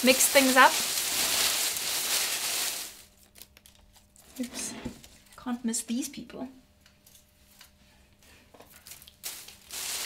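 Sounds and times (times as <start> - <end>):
paper strips rustling: 0.0 - 4.5, 8.8 - 10.0.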